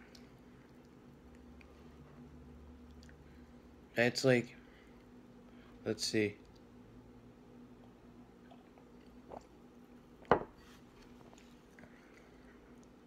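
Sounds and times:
glass knocking on wooden table: 0:10.3 - 0:10.5.

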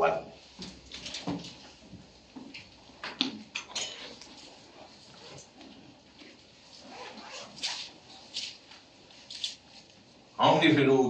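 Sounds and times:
faint room murmur: 0:00.0 - 0:11.0
pages being turned: 0:07.5 - 0:10.0.

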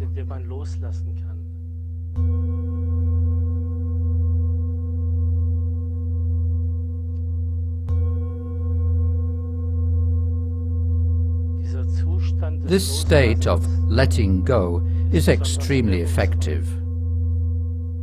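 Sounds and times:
singing bowl struck and ringing: 0:01.5 - 0:18.0.

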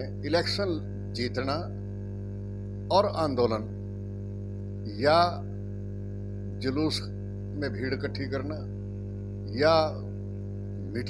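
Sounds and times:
man speaking: 0:00.0 - 0:01.7, 0:02.9 - 0:03.7, 0:04.9 - 0:05.4, 0:06.6 - 0:08.6, 0:09.5 - 0:10.1
electrical mains hum: 0:00.0 - 0:11.0.

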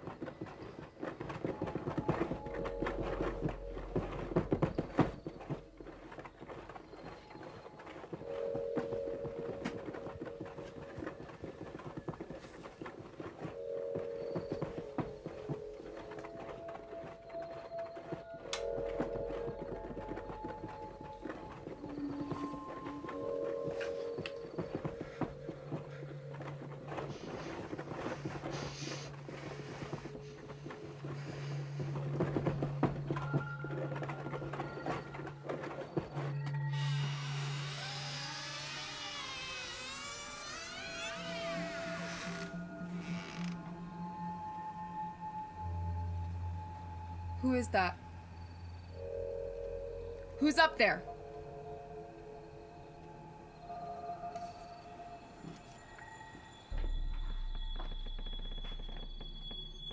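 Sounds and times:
crackling scratchy texture: 0:00.0 - 0:44.3
low horror drones: 0:36.3 - 0:59.9.

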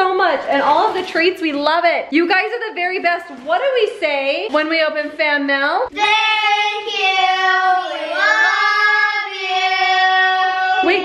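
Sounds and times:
children singing in unison: 0:05.9 - 0:11.0.

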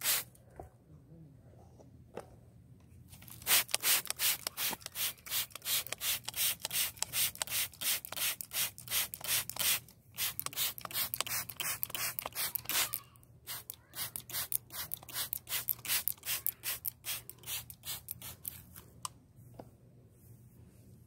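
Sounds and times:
trigger spray bottle hissing: 0:00.0 - 0:00.3, 0:03.3 - 0:18.6.

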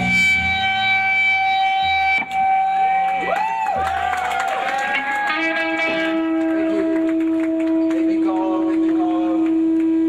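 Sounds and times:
siren-like pitch glides: 0:00.0 - 0:03.3
electric guitar feedback tone: 0:00.0 - 0:03.8, 0:04.7 - 0:10.0
low bass notes: 0:00.0 - 0:03.9, 0:04.9 - 0:10.0.

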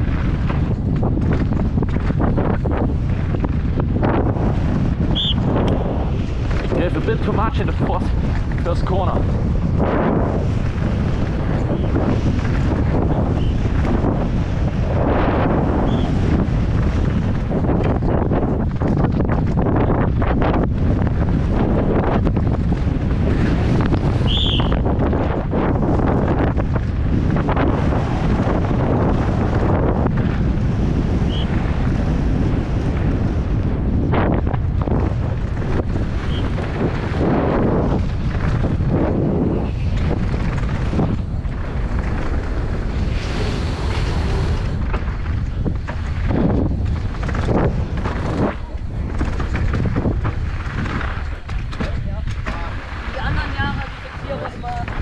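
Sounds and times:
bike rattling and knocking: 0:00.0 - 0:55.0
tyres on dirt and gravel: 0:00.0 - 0:55.0
wind buffeting microphone: 0:00.0 - 0:55.0.

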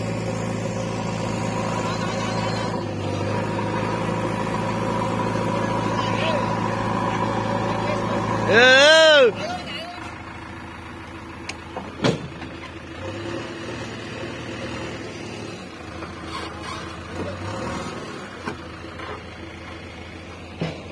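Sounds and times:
backhoe diesel engine running: 0:00.0 - 0:20.9.

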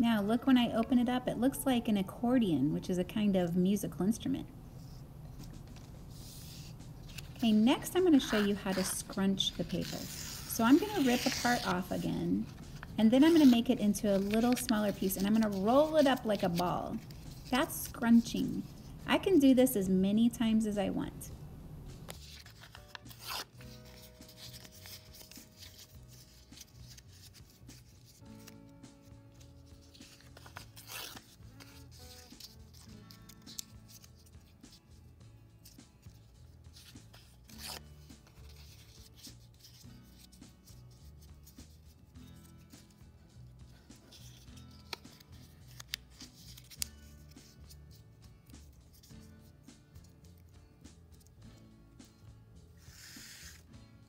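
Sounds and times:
soft background music: 0:00.0 - 0:54.0
paper crinkling and rustling: 0:05.3 - 0:17.5, 0:22.1 - 0:28.6, 0:29.3 - 0:34.3, 0:44.0 - 0:47.6
paper ripping: 0:05.3 - 0:18.0, 0:22.1 - 0:28.7, 0:29.6 - 0:34.4, 0:36.7 - 0:40.8, 0:44.1 - 0:47.7, 0:52.8 - 0:53.6.

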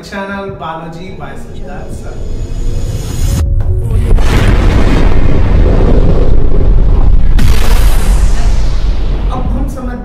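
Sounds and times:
music: 0:00.0 - 0:05.4
deep rumbling boom: 0:00.5 - 0:10.0
loud rushing whoosh: 0:01.6 - 0:09.6.

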